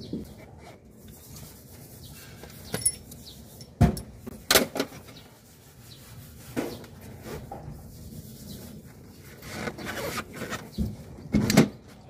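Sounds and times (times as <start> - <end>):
rubbing and scraping on metal: 0.0 - 10.9.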